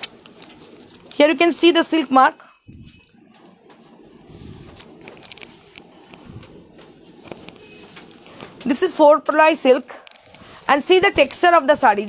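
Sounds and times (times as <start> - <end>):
fabric rustling: 2.7 - 12.0.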